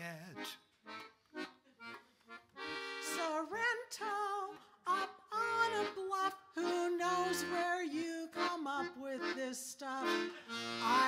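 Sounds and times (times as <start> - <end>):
accordion chords: 0.1 - 11.0.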